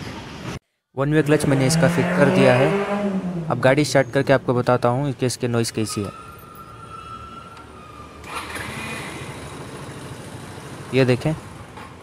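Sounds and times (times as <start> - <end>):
scooter engine starting and running: 7.7 - 12.0.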